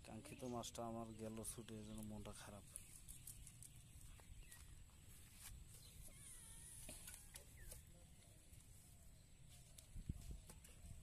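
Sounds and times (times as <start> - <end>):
faint wavering animal cry: 6.0 - 7.5.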